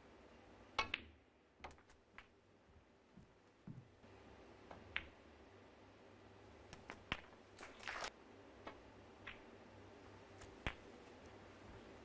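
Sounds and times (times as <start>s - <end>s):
snooker balls clicking: 0.8s - 2.4s, 4.7s - 5.2s, 8.6s - 9.5s, 10.4s - 11.4s.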